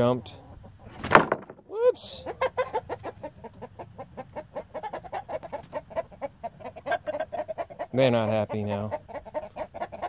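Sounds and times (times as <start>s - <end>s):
chickens clucking: 0.0s - 10.0s.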